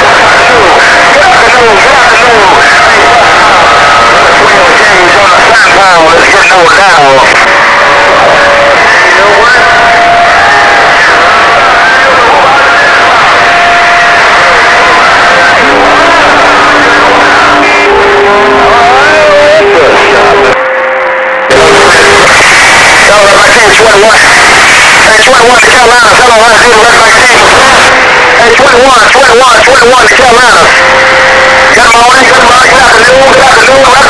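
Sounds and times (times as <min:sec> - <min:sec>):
garbled radio voices: 0:00.0 - 0:34.0
radio static hiss: 0:00.0 - 0:34.0.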